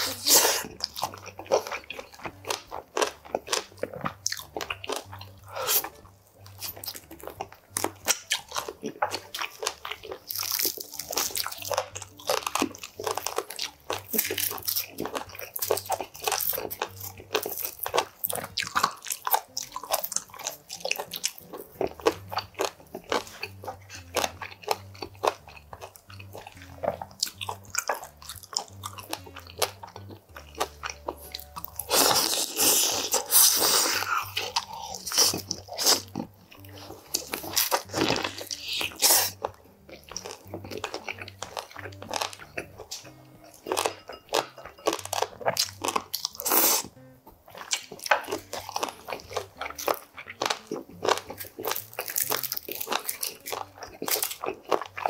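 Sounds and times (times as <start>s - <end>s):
chewing and crunching chicken wings: 0.0s - 55.0s.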